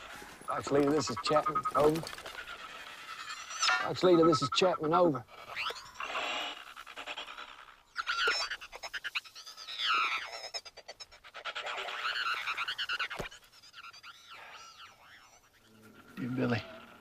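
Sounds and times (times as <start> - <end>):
chirping whistling calls: 0.0 - 6.7, 11.6 - 17.0
rapid clicking trills: 0.0 - 17.0.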